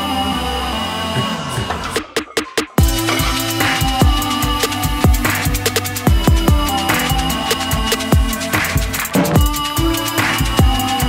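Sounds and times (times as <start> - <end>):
held synth chords: 2.8 - 11.0
low bass line: 2.8 - 11.0.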